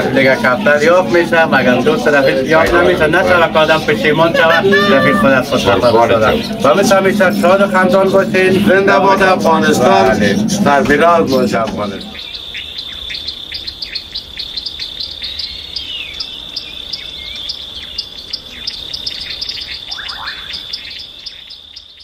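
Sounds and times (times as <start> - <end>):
small birds chirping: 0.0 - 22.0
cricket trill: 0.7 - 22.0.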